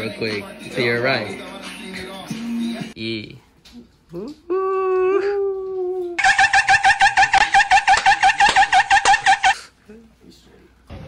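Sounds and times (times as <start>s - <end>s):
high-pitched cackling laugh: 6.2s - 9.6s.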